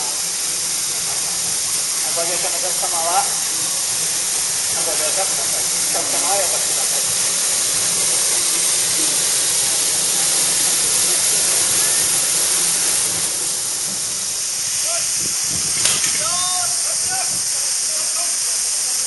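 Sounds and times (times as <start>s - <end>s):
loud high-pitched hiss: 0.0s - 19.0s
sharp click: 15.7s - 16.4s.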